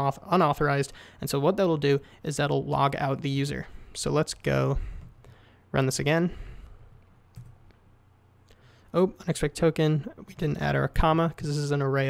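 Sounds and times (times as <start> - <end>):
man speaking: 0.0 - 5.1, 5.7 - 6.6, 8.9 - 12.0
computer keyboard clicks: 7.3 - 7.7.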